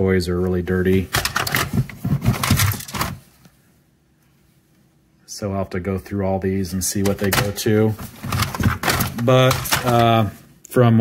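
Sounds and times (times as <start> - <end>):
plastic toy pieces clattering: 1.1 - 3.2, 8.3 - 10.2.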